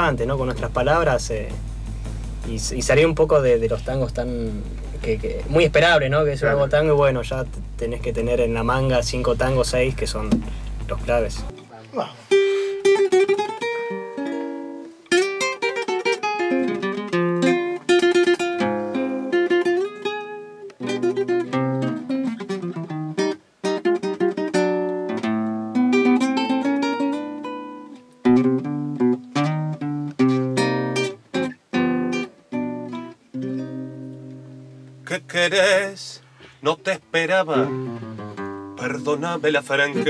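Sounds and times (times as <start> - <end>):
nylon-string guitar playing tango: 0.0 - 40.0.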